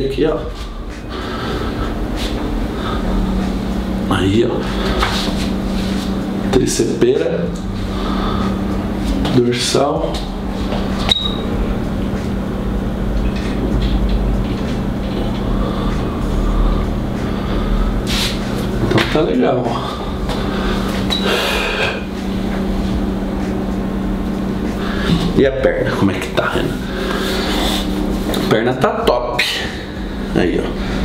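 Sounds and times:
low mechanical hum: 0.0s - 31.0s.

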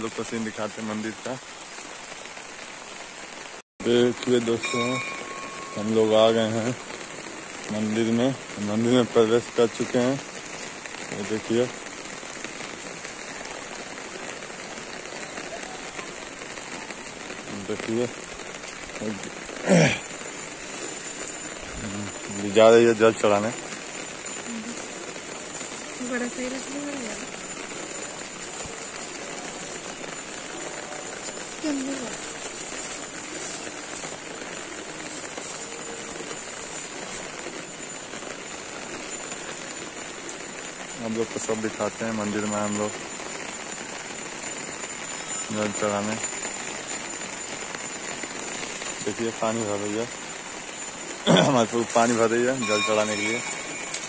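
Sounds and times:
heavy rain on wet ground: 0.0s - 54.0s.

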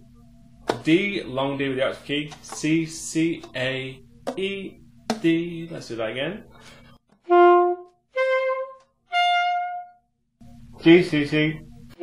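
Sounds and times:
person speaking: 0.7s - 6.5s
alto saxophone notes: 7.2s - 10.6s.

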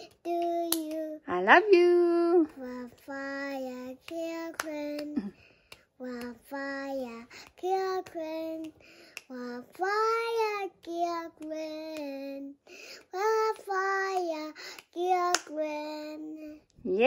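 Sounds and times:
young boy singing: 0.0s - 1.3s, 2.4s - 16.8s.

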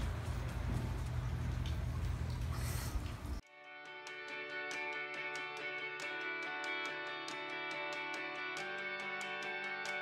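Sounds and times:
outdoor ambience rumble and hiss: 0.0s - 3.4s
guitar music: 3.5s - 10.0s.

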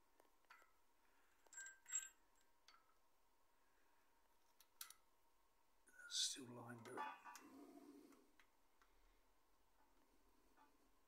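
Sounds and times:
metal chain clinking and rattling: 0.4s - 3.0s.

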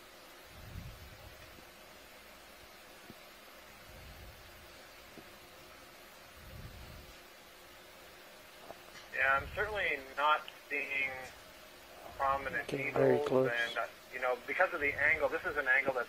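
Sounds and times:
audio line hiss: 0.0s - 16.0s.

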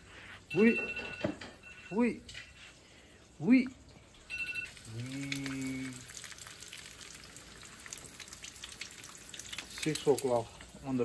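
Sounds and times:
eggs frying and crackling: 2.8s - 11.0s.

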